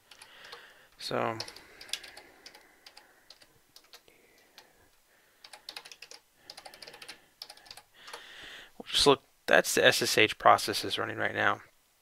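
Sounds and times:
computer keyboard typing: 0.0 - 0.7, 1.3 - 4.7, 5.4 - 8.2.

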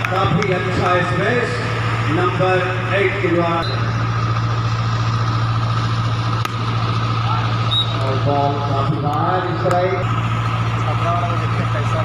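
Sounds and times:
low mechanical drone: 0.0 - 12.0.

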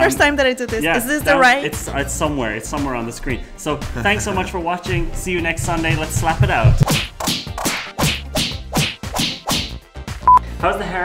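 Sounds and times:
whip-crack slap effects: 6.8 - 9.8.

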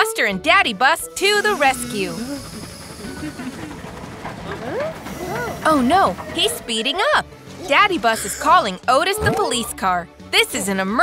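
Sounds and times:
cartoon train hissing: 0.4 - 9.0.

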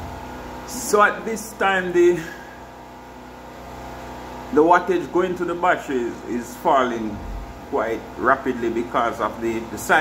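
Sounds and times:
generator engine humming: 0.0 - 10.0.

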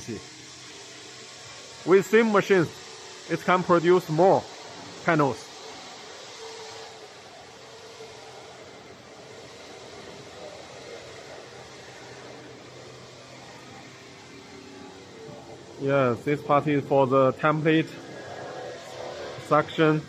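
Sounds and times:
machinery humming: 0.0 - 20.0.

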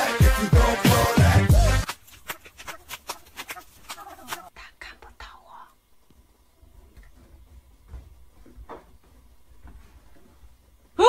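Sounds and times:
person whispering: 4.4 - 5.8.

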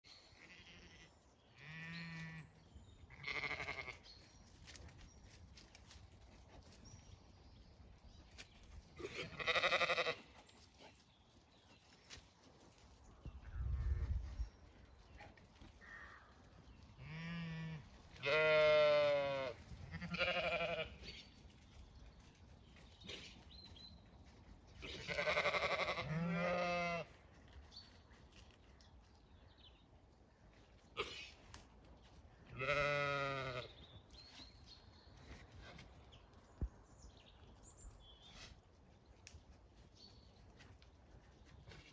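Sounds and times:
sheep bleating: 0.4 - 2.5, 3.1 - 4.0, 9.0 - 10.2, 17.0 - 21.0, 24.8 - 27.1, 32.6 - 33.7.

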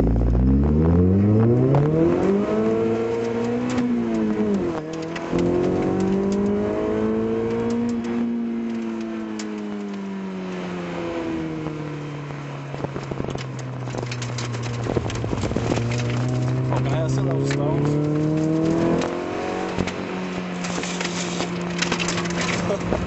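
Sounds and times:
car engine accelerating hard: 0.0 - 23.0.

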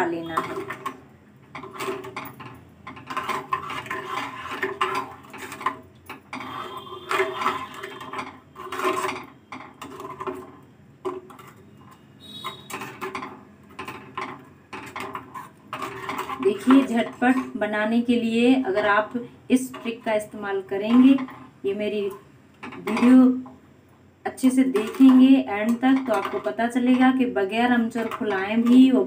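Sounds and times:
metal spoon scraping a saucepan: 0.0 - 1.0, 1.6 - 17.7, 19.5 - 21.6, 24.6 - 29.0.

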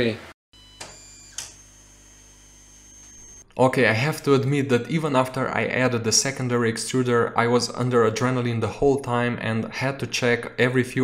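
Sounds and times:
printer motors whining: 0.7 - 3.4.

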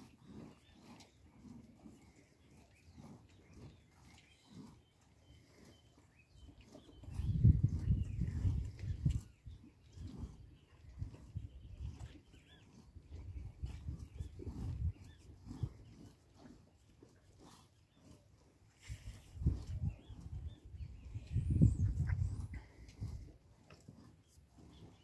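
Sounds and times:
cattle puffing: 0.0 - 25.0.

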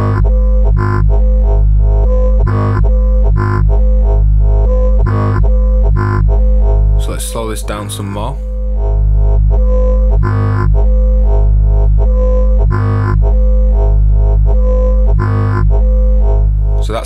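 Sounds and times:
low synthesizer tone: 0.0 - 17.0.

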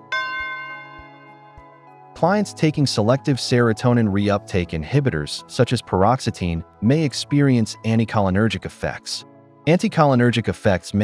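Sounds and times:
bell-like chime ringing: 0.0 - 2.4
soft background music: 0.0 - 11.0.

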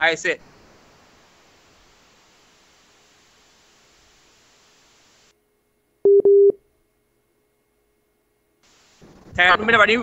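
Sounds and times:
censor bleep: 6.1 - 6.6.

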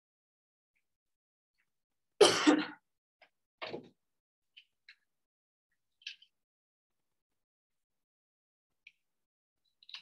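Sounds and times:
person coughing: 2.2 - 2.8.

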